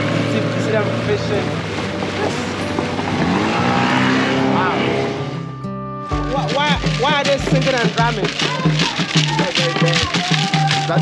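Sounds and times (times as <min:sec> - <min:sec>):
boat motor running: 0:00.0 - 0:11.0
voices singing: 0:01.5 - 0:11.0.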